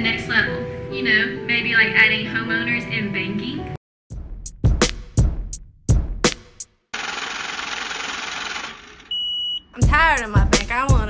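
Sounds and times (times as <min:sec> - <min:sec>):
banknote counting machine whirring: 0:07.0 - 0:09.2.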